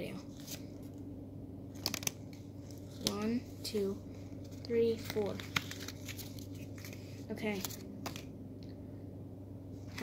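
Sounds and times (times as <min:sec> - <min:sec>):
steady low hum: 0:00.0 - 0:10.0
foil and cards being handled: 0:04.4 - 0:08.3.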